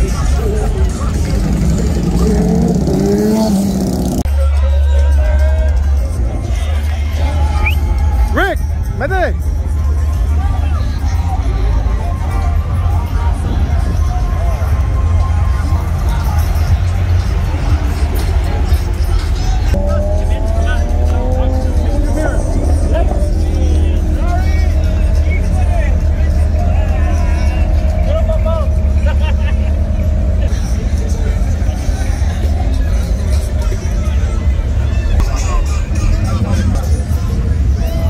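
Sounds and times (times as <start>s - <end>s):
cars passing slowly: 0.0s - 38.0s
crowd chatter: 0.0s - 38.0s
music with heavy bass: 0.0s - 38.0s.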